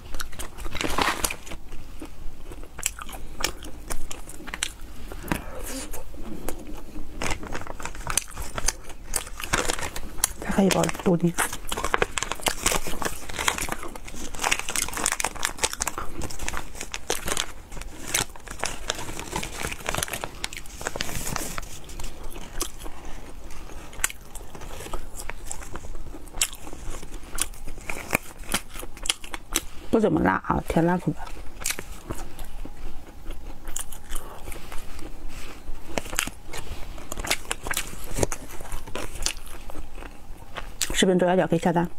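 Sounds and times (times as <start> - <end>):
plastic packet crinkling: 0.0 - 1.7, 6.5 - 29.6
person biting and chewing snack: 0.0 - 10.4, 11.3 - 29.7, 31.3 - 40.9.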